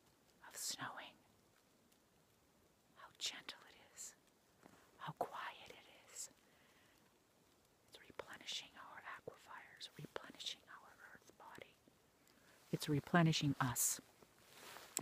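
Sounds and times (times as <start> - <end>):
woman whispering: 0.4 - 1.2, 3.0 - 4.2, 5.0 - 6.4, 7.9 - 11.8, 12.7 - 14.0.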